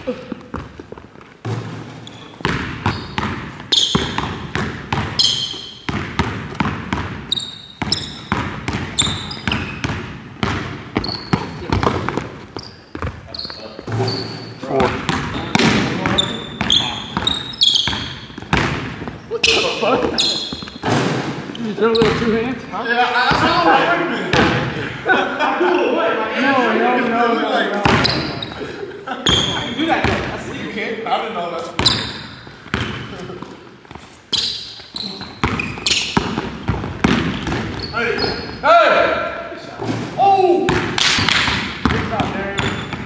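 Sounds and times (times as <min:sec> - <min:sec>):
sneaker squeaks: 0:00.0 - 0:23.6, 0:27.8 - 0:30.4, 0:31.6 - 0:38.7, 0:41.0 - 0:43.0
basketball bouncing on hardwood floor: 0:00.5 - 0:13.3, 0:13.9 - 0:19.2, 0:21.9 - 0:22.5, 0:31.8 - 0:33.1, 0:35.2 - 0:37.9, 0:40.7 - 0:43.0.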